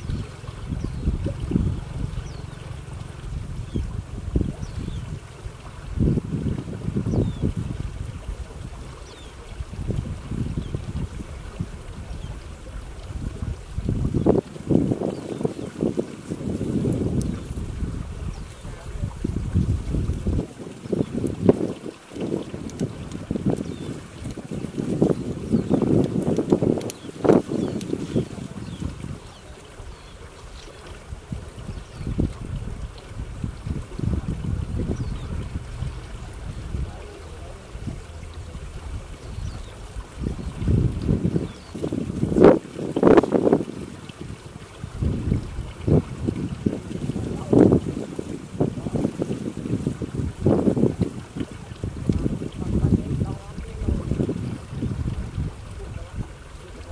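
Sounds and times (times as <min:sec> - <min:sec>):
wind buffeting microphone: 0:00.0 - 0:56.9.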